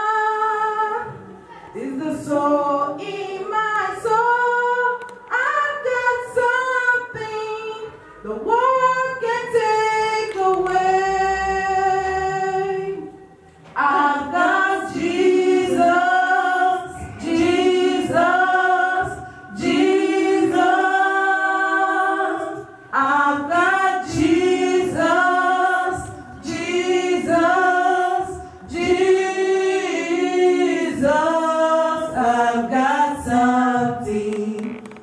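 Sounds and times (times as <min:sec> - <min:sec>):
gospel choir singing: 0:00.0 - 0:35.0.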